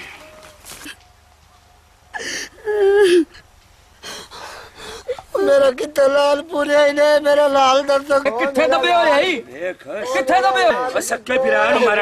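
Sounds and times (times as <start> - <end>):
gasping sobs: 2.1 - 3.4, 4.0 - 5.5
woman crying: 2.1 - 3.4, 4.0 - 6.0.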